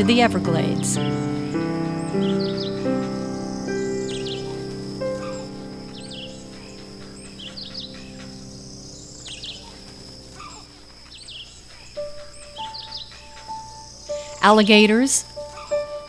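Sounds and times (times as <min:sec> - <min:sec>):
birds chirping: 0:00.0 - 0:16.0
high insect buzz: 0:00.0 - 0:16.0
soft background music: 0:00.0 - 0:16.0.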